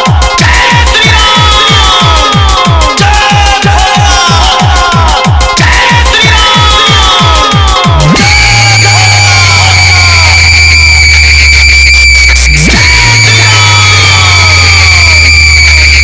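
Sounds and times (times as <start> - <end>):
bass sweeping downward: 7.9 - 16.0
deep bass drone: 7.9 - 16.0
high-pitched whine: 8.1 - 16.0
falling whistle-like glides: 10.6 - 13.6.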